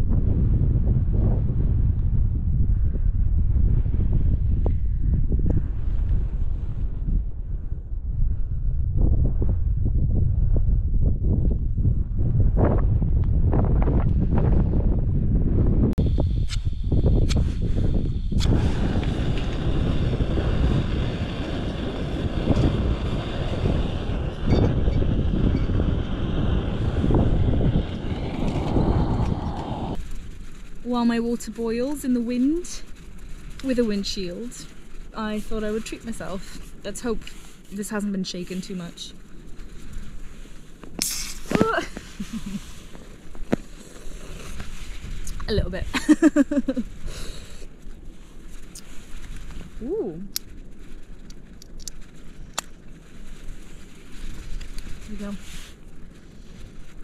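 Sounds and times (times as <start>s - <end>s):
wind buffeting microphone: 0.0s - 57.0s
camping stove gas hiss: 16.0s - 50.6s.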